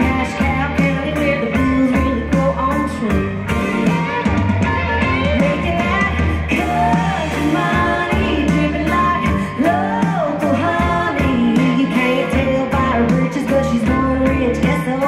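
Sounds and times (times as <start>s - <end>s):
live country-rock band: 0.0s - 15.0s
woman singing lead: 0.0s - 15.0s.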